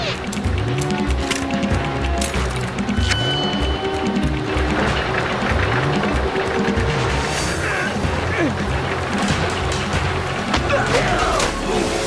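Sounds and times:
cartoon action music: 0.0s - 12.0s.

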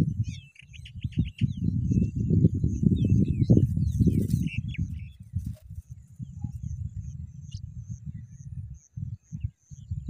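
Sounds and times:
faint high bird chirps: 0.0s - 10.0s.

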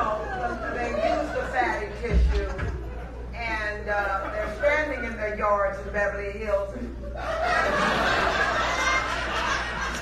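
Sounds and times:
background chatter: 0.0s - 5.3s.

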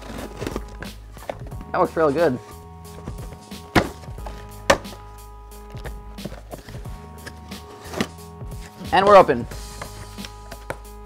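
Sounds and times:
background music: 0.0s - 11.0s
knocks and scrapes on cardboard: 3.0s - 5.0s.

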